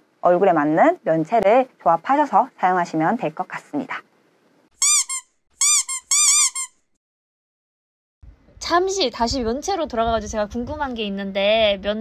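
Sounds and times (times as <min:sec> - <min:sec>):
cartoon squeaks: 0:04.8 - 0:06.8.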